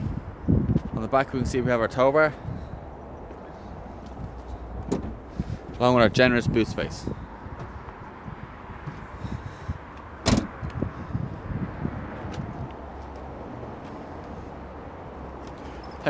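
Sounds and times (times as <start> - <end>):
outdoor background noise: 0.0 - 16.0
car tailgate slamming shut: 4.8 - 5.2, 10.2 - 10.6.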